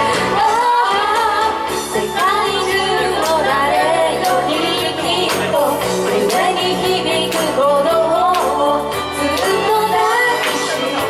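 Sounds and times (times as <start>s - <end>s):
karaoke backing track: 0.0s - 11.0s
woman singing: 0.0s - 11.0s.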